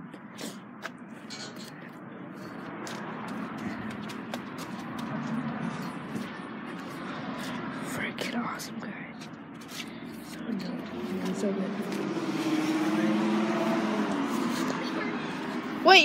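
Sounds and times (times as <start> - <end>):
person whispering: 7.7 - 9.2.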